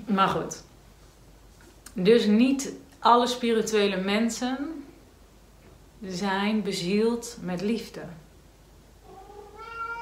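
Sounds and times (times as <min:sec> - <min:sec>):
cat meowing: 0:09.0 - 0:10.0.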